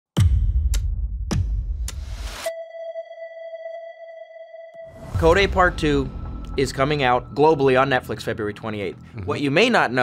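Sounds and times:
steady synthesized tone: 0:02.4 - 0:08.4.

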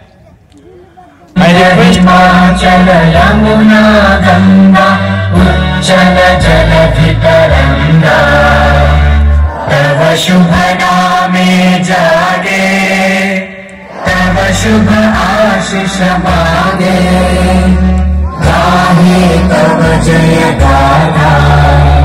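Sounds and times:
choir singing with instruments: 0:01.4 - 0:22.0.

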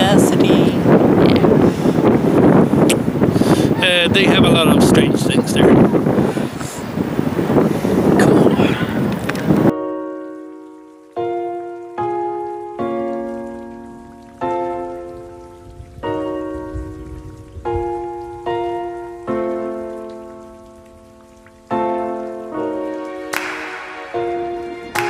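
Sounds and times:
wind buffeting microphone: 0:00.0 - 0:09.7, 0:15.2 - 0:19.0
slow struck chords music: 0:22.1 - 0:25.0.

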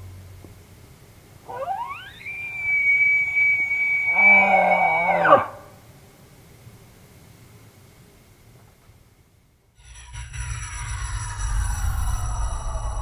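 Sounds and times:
elk bugle whistle: 0:01.5 - 0:05.7.

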